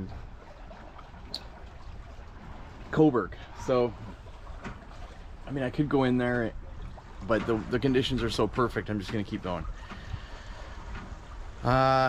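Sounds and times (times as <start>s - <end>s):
water washing around boat: 0.0s - 12.0s
wind: 0.0s - 12.0s.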